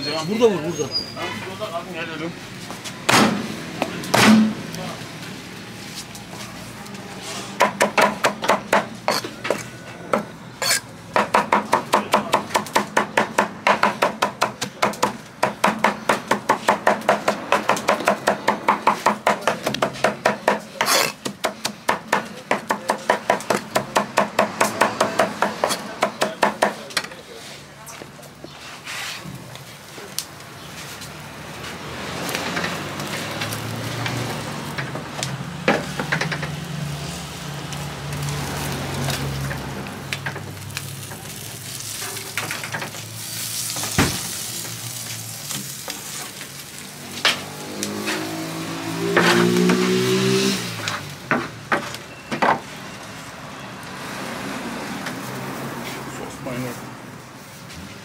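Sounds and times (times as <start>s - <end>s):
scraping and sizzling meat: 10.5s - 11.1s, 28.5s - 51.2s.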